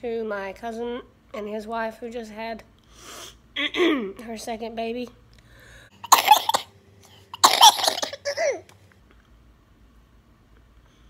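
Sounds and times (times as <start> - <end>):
woman coughing harshly: 3.6 - 4.1, 6.1 - 6.7, 7.4 - 8.6.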